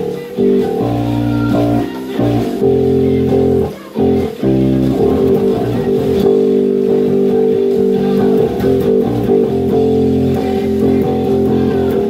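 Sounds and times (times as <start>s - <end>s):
electric bass guitar: 0.0s - 12.0s
rock song recording: 0.0s - 12.0s.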